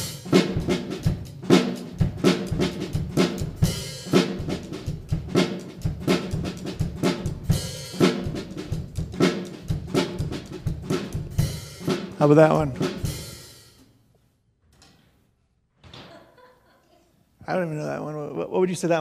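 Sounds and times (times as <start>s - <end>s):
drum kit funk beat: 0.0s - 13.8s.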